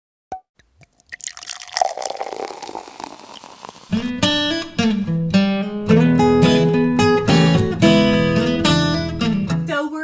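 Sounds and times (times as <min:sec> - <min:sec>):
water dripping and plopping: 0:00.6 - 0:04.0.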